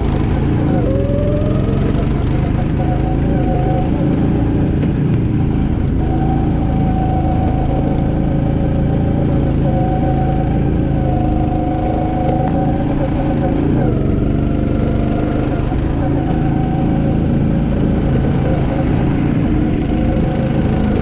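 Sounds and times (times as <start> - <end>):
go-kart engine running: 0.0 - 21.0.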